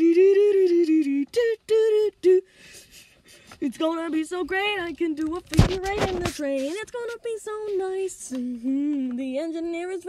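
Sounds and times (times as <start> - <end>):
person singing unaccompanied: 0.0 - 10.0.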